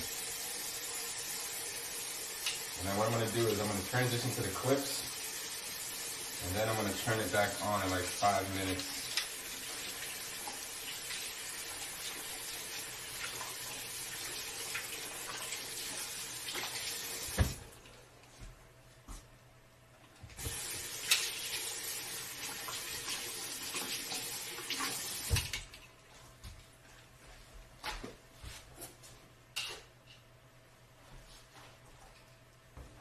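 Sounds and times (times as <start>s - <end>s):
bathroom faucet running: 0.0s - 18.0s, 20.4s - 25.9s.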